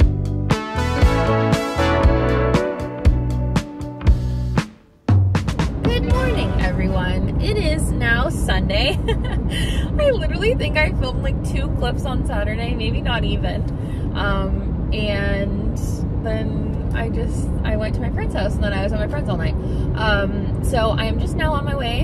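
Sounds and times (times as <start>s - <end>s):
car engine rumble: 5.4s - 22.0s
road noise: 5.4s - 22.0s
woman talking: 5.9s - 22.0s.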